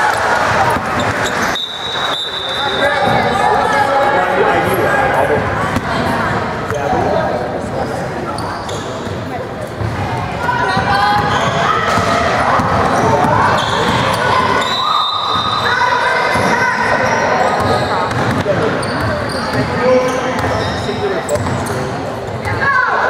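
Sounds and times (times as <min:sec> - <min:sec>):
voices echoing in gym: 0:00.0 - 0:23.0.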